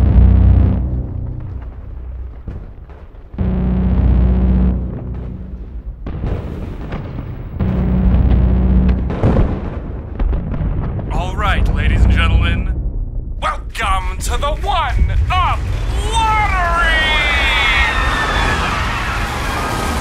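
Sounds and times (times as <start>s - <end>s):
sustained low drone: 0.0s - 1.9s
deep booming swells: 0.0s - 16.4s
sharp crackling effects: 0.0s - 20.0s.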